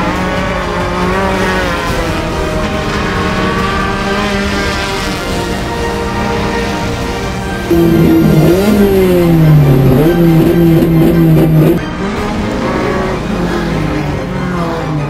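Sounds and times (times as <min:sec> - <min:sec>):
background music: 0:00.0 - 0:15.0
race car engine revving: 0:00.0 - 0:15.0.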